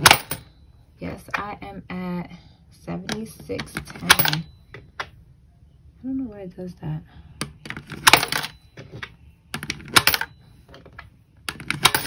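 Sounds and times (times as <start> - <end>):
coin counter clicking: 0.0 - 0.4, 3.6 - 4.5, 7.7 - 8.6, 9.6 - 10.3, 11.5 - 12.0
coins clinking in a jar: 0.0 - 0.5, 3.7 - 4.5, 7.8 - 8.7, 9.6 - 10.3, 11.5 - 12.0.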